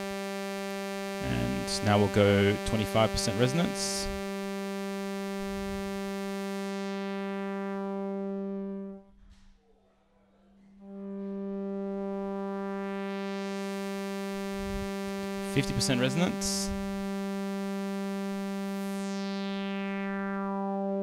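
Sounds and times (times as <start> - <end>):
synthesizer filter sweep: 0.0 - 9.1, 10.8 - 21.0.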